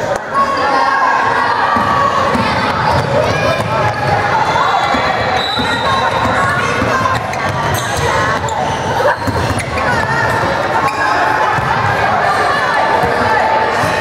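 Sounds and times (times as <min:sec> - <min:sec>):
players and spectators calling out: 0:00.0 - 0:14.0
basketball bouncing on court: 0:01.8 - 0:10.6.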